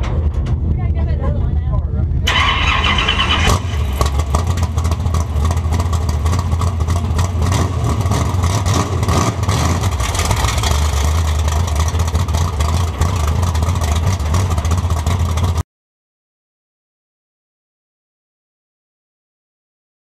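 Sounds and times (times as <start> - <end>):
race car engine rumbling: 0.0 - 15.6.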